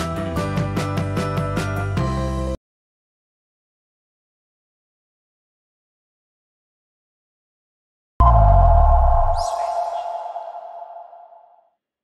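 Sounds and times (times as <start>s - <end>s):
deep bass hit: 8.2s - 11.2s
high rising sweep: 8.2s - 11.6s
two-note synth tone: 8.2s - 11.6s.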